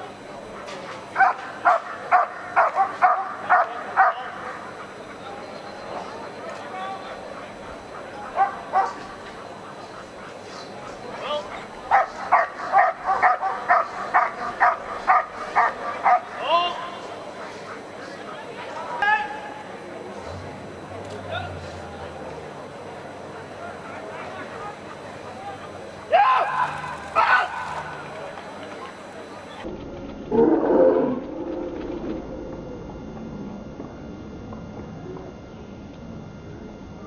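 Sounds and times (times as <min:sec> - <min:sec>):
dog barking: 0:01.2 - 0:04.7, 0:08.0 - 0:09.2, 0:11.9 - 0:16.4.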